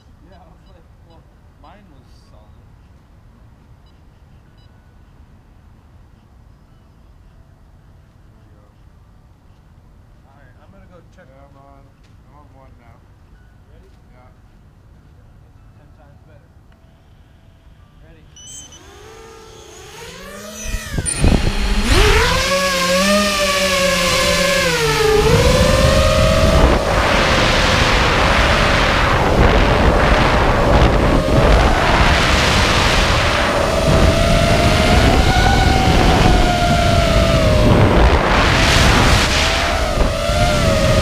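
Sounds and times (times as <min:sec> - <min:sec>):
drone motor whine: 0:18.4 - 0:41.0
rushing wind noise: 0:20.2 - 0:41.0.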